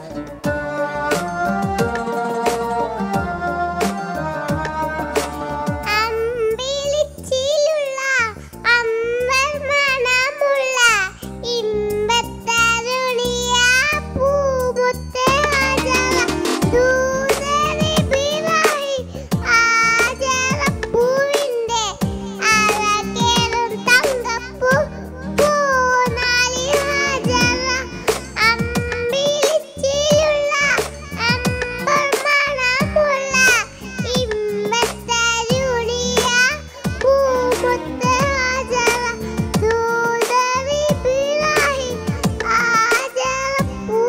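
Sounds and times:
backing music with drum beat: 0.0s - 6.3s, 15.3s - 44.0s
girl singing: 0.0s - 44.0s.

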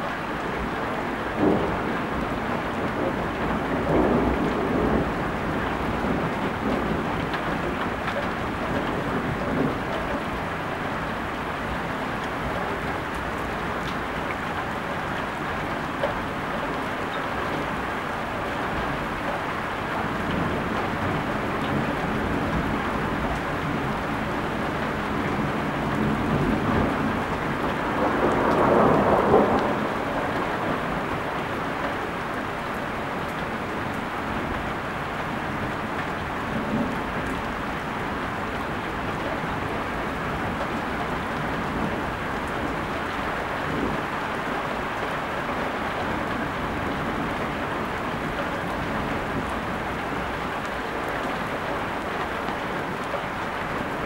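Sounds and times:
heavy rain falling: 0.0s - 54.0s
thunder rumbling: 0.4s - 10.4s, 20.0s - 35.7s.

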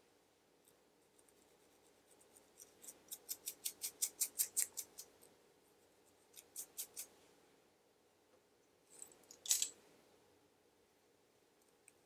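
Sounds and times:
fingers scratching scalp: 1.0s - 5.3s, 6.1s - 7.2s.

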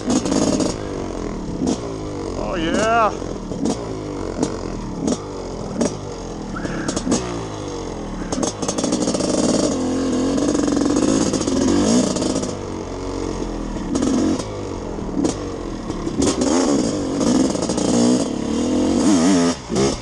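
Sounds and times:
dirt bike engine revving: 0.0s - 20.0s.

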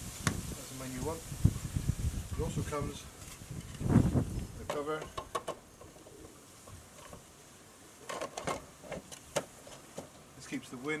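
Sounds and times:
plastic clicks and knocks: 4.6s - 5.6s.

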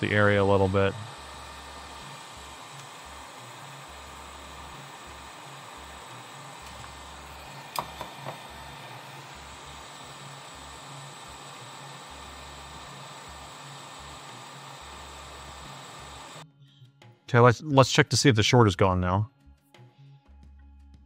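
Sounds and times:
hot air blower hissing: 0.0s - 16.4s.

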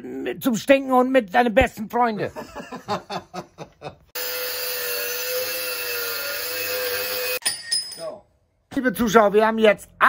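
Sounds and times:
angle grinder cutting metal: 4.2s - 7.4s.

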